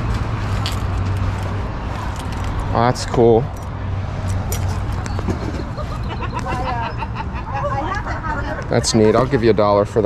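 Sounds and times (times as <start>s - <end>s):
constant low hum: 0.0s - 8.7s.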